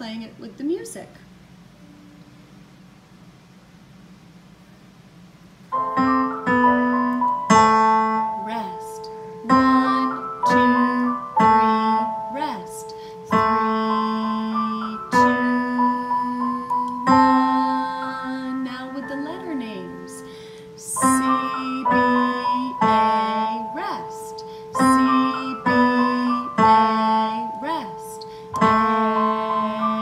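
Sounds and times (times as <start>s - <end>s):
recorded accompaniment: 5.6s - 30.0s
piano playing descending pattern: 5.7s - 30.0s.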